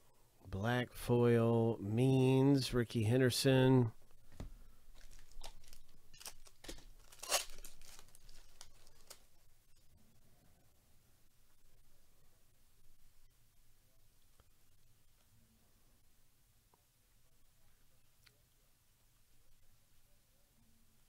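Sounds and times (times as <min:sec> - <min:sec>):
handling of cards: 0:04.3 - 0:09.4
foil wrapper crinkling: 0:04.9 - 0:09.4.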